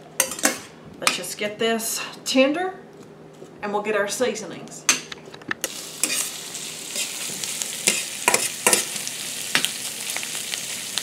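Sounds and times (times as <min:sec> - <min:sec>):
vegetables sizzling in a pan: 0:05.6 - 0:11.0.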